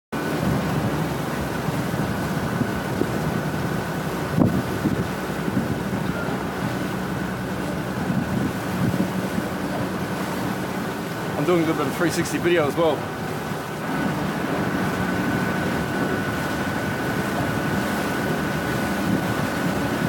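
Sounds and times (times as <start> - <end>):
boat engine hum: 0.1 - 20.0
water rushing: 0.1 - 20.0
wind buffeting microphone: 0.2 - 20.0
faint steady whine: 13.8 - 20.0.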